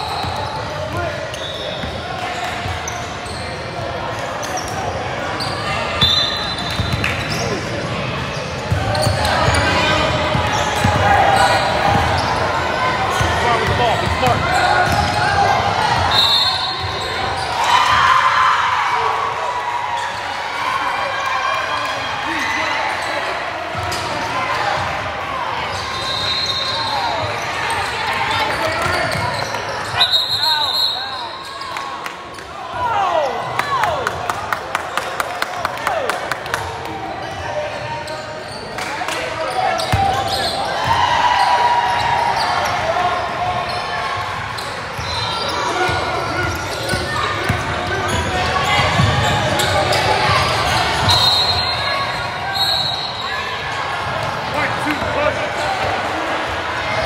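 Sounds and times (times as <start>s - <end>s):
sneakers squeaking: 0.0s - 18.0s, 22.3s - 25.0s, 25.6s - 33.6s, 37.2s - 57.0s
basketball bouncing on court: 6.6s - 7.4s, 13.1s - 15.3s, 45.9s - 51.2s.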